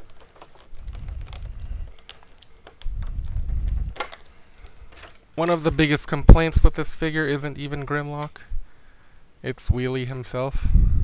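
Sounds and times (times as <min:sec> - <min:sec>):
plastic toy parts clicking: 0:00.0 - 0:05.8
low rumbling handling noise: 0:00.0 - 0:06.9.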